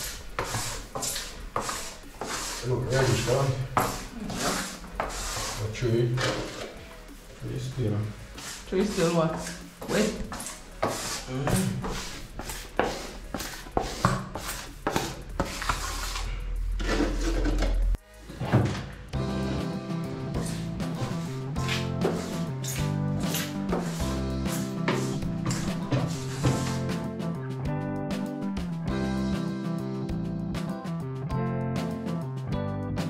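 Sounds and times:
grout float scraping tiles: 0.0s - 6.8s, 8.3s - 18.8s, 20.4s - 27.0s
background guitar music: 16.6s - 33.0s.

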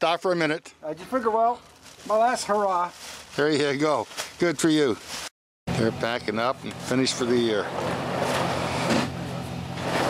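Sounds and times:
vehicle engine humming: 5.7s - 10.0s.

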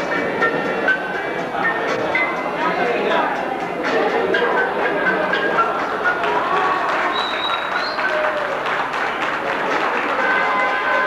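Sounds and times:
background music with held notes: 0.0s - 11.0s
audience applauding: 6.0s - 11.0s.

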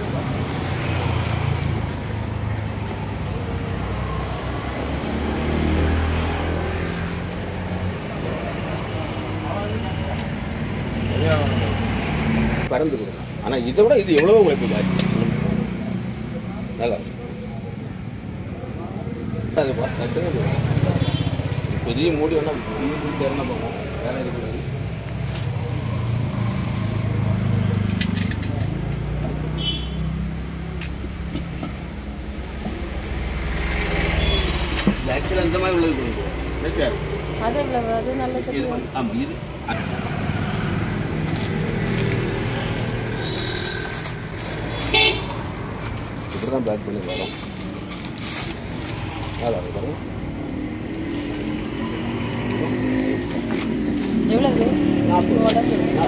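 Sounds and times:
vehicle engine rumbling: 0.0s - 56.0s.

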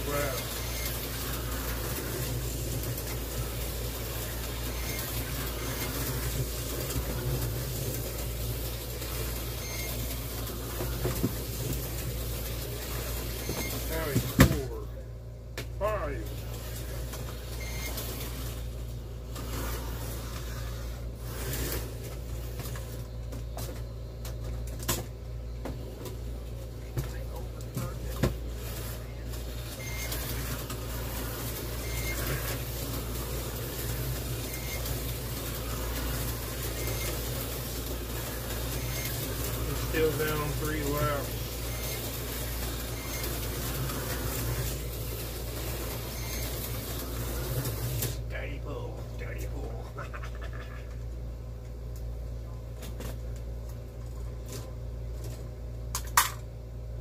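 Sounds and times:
slot car motors whirring: 0.0s - 51.6s.

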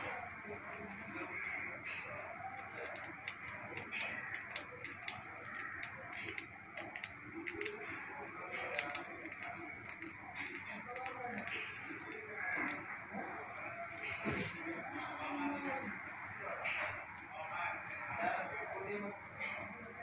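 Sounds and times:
indistinct background voices: 0.0s - 20.0s.

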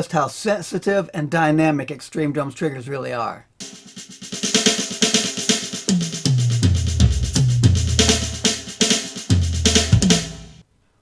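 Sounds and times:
bass drum: 3.6s - 10.6s
snare and tom strokes: 3.6s - 10.6s.

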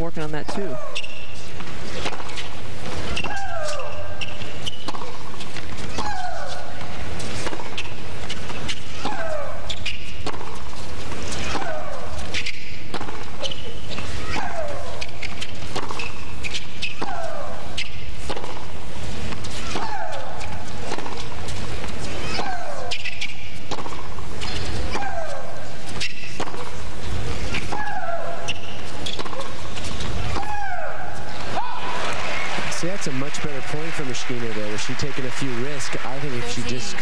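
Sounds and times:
ball bouncing on court: 0.0s - 37.0s
tennis ball hitting racket: 0.4s - 32.7s
woman shrieking: 3.2s - 4.2s, 5.9s - 6.8s, 24.9s - 25.6s, 27.7s - 28.6s, 30.3s - 32.2s.

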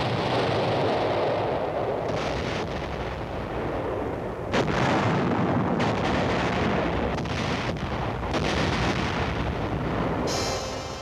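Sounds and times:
low rumble of guns: 0.0s - 10.3s
loud cannon shot: 0.0s - 11.0s.

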